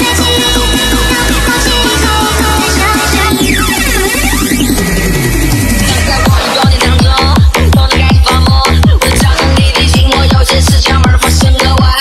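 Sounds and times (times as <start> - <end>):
synth sweep: 0.0 - 7.8
electronic dance music: 0.0 - 12.0.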